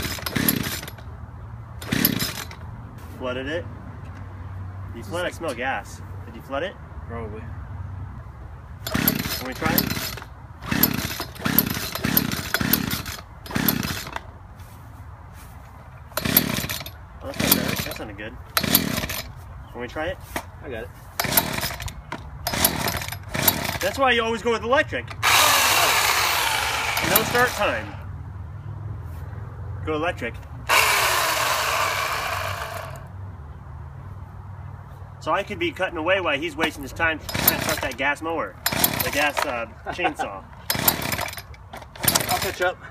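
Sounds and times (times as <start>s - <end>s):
chainsaw engine turning over: 0.0s - 1.1s, 1.8s - 2.6s, 8.8s - 14.3s, 16.1s - 19.3s, 21.2s - 24.0s, 25.1s - 28.0s, 30.7s - 33.1s, 36.6s - 39.7s, 40.6s - 42.8s.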